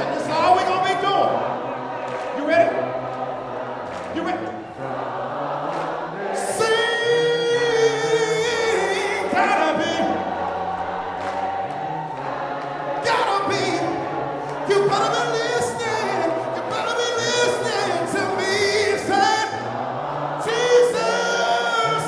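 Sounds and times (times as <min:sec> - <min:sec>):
choir singing a cappella: 0:00.0 - 0:22.0.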